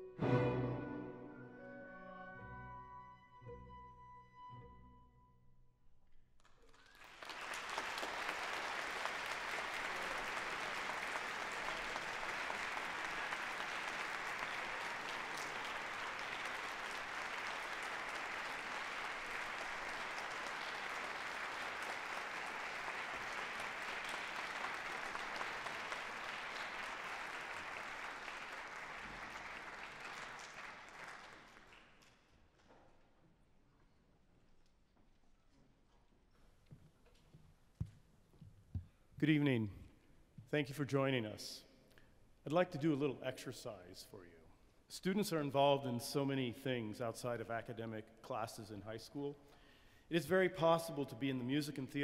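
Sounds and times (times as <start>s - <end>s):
orchestra note: 0.0s - 5.3s
audience applauding: 6.6s - 32.1s.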